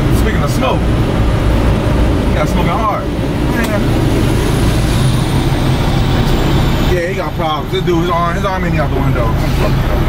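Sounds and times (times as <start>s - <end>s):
diesel trucks idling: 0.0s - 10.0s
truck passing close by: 0.8s - 10.0s.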